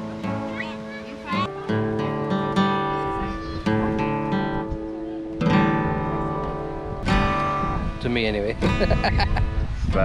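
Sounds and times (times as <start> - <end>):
acoustic guitar chords strummed: 0.0 - 8.0.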